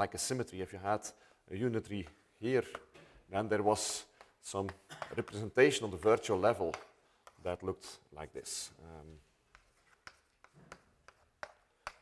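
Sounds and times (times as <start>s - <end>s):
chalk tapping on blackboard: 3.8s - 5.6s, 6.4s - 7.5s, 9.4s - 12.0s.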